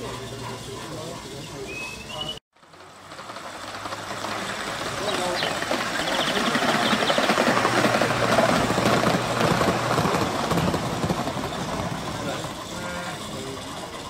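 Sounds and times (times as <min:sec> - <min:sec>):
model train wheels clattering: 0:00.0 - 0:14.0.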